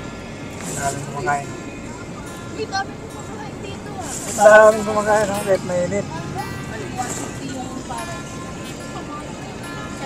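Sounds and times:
car road and engine noise: 0.0 - 10.0
faint voices: 0.0 - 10.0
music playing: 0.0 - 10.0.

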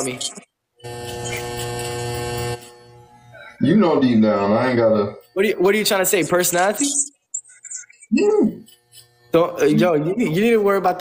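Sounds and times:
electric hair clippers buzzing: 0.8 - 7.0, 8.4 - 11.0.

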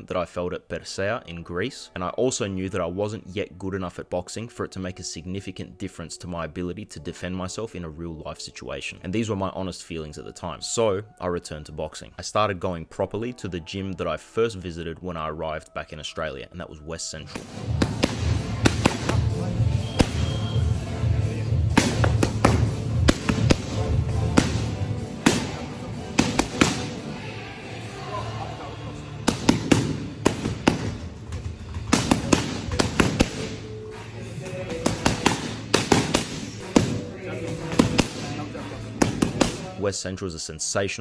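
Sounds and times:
boxing gloves hitting mitts: 17.3 - 20.7, 21.6 - 27.0, 29.2 - 33.7, 34.4 - 39.8
music with steady low beat: 17.4 - 27.2, 29.1 - 39.6.

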